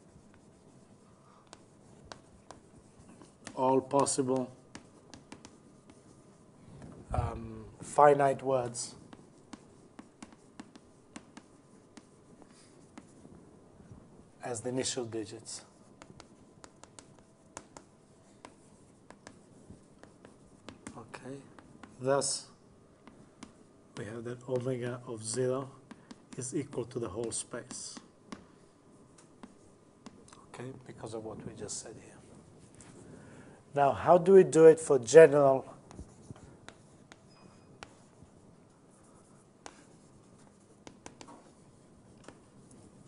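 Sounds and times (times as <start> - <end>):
taps and scratches of writing: 0.0 - 7.1, 7.8 - 14.0, 14.6 - 33.1, 34.2 - 43.0.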